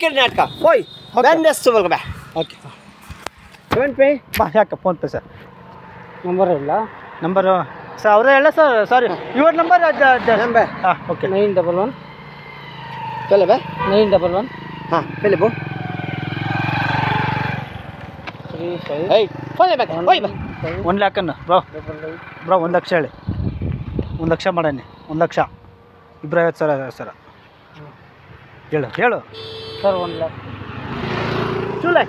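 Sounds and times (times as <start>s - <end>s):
person speaking: 0.0s - 3.0s
motorcycle engine passing by: 5.5s - 26.0s, 29.4s - 32.0s.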